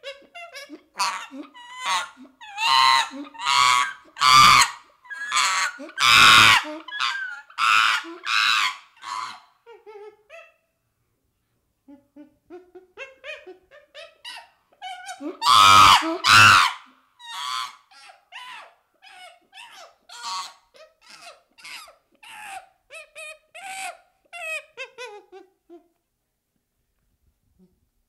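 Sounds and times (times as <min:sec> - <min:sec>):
chimpanzee screams: 0:00.0 - 0:09.5, 0:13.0 - 0:25.3
chimpanzee squeaking and hooting: 0:00.0 - 0:10.6, 0:11.9 - 0:25.8.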